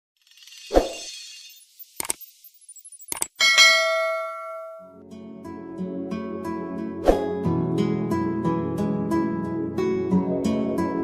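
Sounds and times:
bell-like ding: 3.4s - 5.0s.

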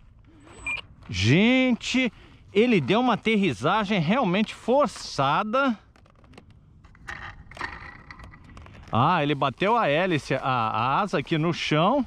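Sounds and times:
crunching and scraping on dirt: 0.0s - 12.0s
small plastic clicks: 5.8s - 9.0s.

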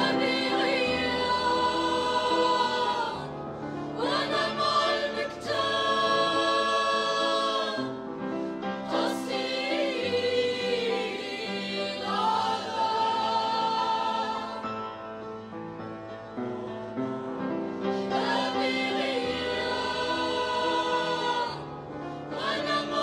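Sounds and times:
mixed choir singing in harmony: 0.0s - 23.0s.

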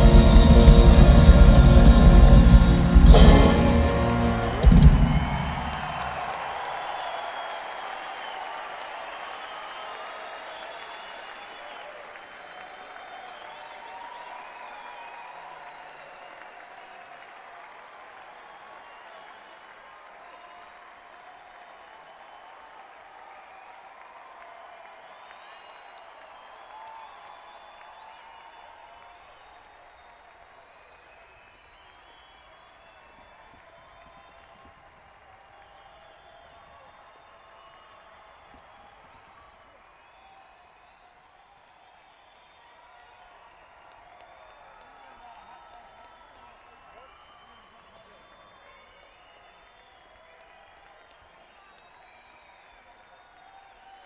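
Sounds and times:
shouts and whistles: 0.0s - 17.0s, 18.4s - 20.7s, 21.6s - 34.8s, 35.4s - 54.0s
audience applauding and cheering: 0.0s - 54.0s.

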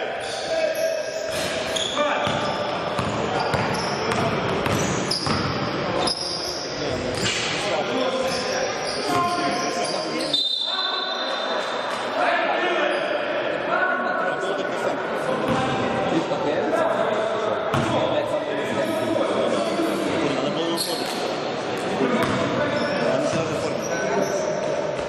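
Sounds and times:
players calling and shouting: 0.0s - 25.0s
basketball bouncing on court: 2.2s - 5.7s, 22.2s - 22.5s.

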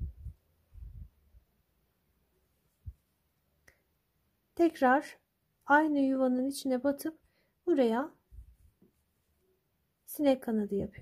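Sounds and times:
faint click: 3.6s - 3.9s.

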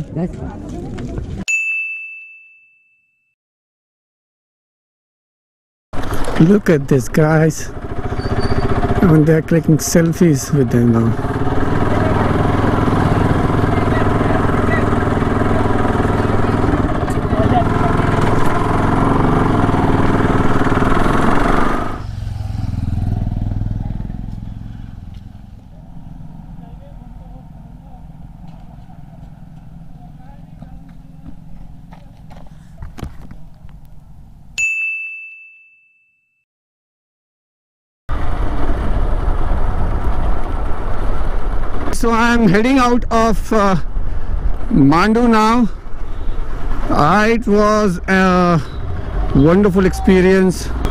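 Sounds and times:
bright ding: 1.5s - 3.3s, 34.6s - 36.4s
motorcycle engine idling: 7.6s - 34.5s.

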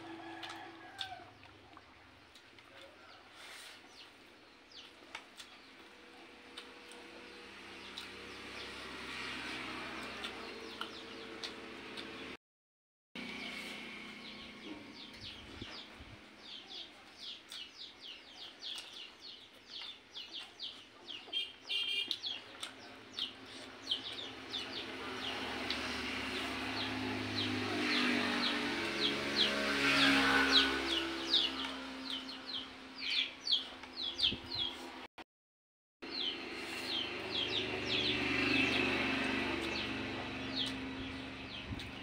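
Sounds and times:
small birds chirping: 0.2s - 12.4s, 13.2s - 35.0s, 36.0s - 42.0s.

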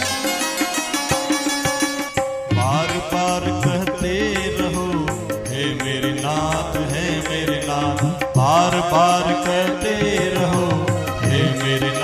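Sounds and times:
steady percussion beat: 0.0s - 12.0s.

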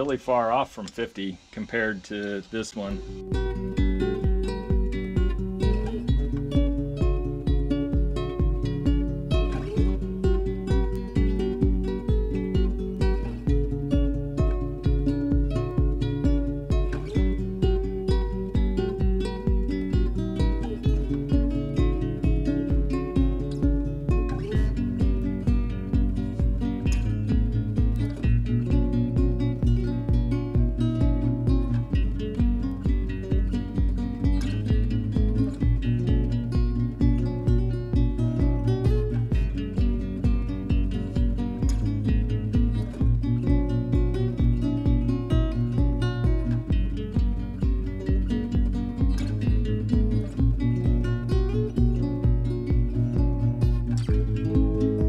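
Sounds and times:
guitar music over a steady beat: 0.0s - 55.0s.

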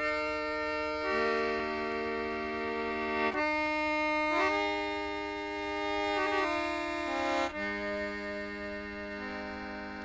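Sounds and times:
slow instrumental folk music: 0.0s - 10.0s.

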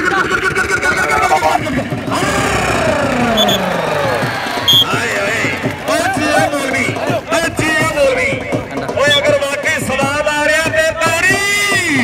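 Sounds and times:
commentator over loudspeaker: 0.0s - 3.8s, 4.6s - 12.0s
crowd hum: 0.0s - 9.1s
short high whistle pips: 3.3s - 3.7s, 4.7s - 4.9s.

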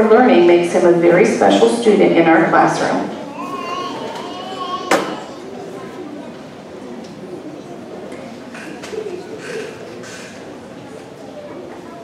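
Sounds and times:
murmur of voices in a hall: 0.0s - 12.0s.

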